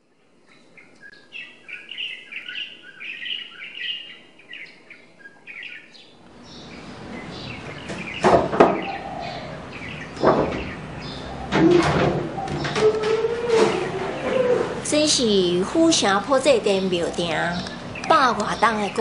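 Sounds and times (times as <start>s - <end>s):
small birds chirping: 0.0s - 19.0s
steady background noise: 0.0s - 19.0s
quick sharp knocks: 10.2s - 10.8s.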